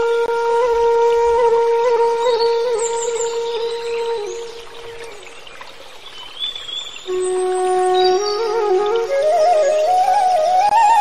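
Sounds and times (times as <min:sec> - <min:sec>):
flute music: 0:00.0 - 0:05.7, 0:07.0 - 0:11.0.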